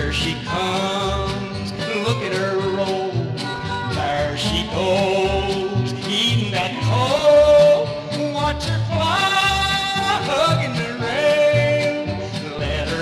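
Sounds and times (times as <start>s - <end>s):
bass and rhythm beat: 0.0s - 13.0s.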